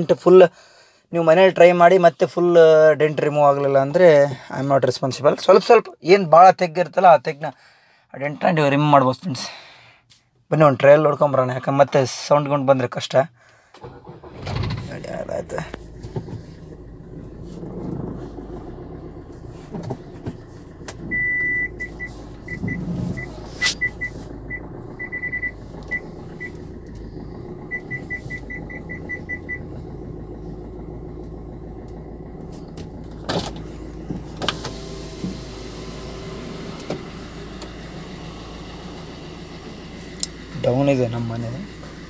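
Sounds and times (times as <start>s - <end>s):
car engine idling: 13.4s - 42.0s
car warning beeps: 20.9s - 27.0s, 27.6s - 29.8s.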